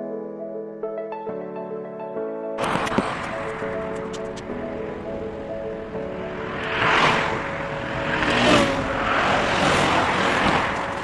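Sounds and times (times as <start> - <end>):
cars passing: 2.6 - 11.0.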